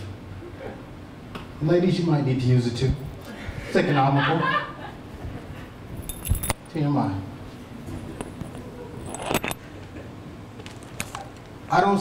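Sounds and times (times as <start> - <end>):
low room hum: 0.0 - 12.0
small hard objects clinking: 9.0 - 9.6.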